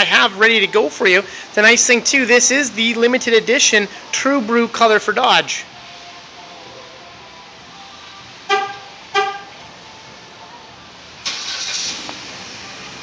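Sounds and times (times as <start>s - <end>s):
car engine starting and idling: 8.3s - 13.0s
car horn toots: 8.5s - 9.6s.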